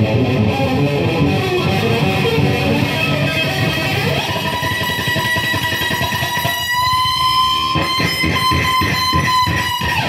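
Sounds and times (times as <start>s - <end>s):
electric guitar playing: 0.0s - 10.0s.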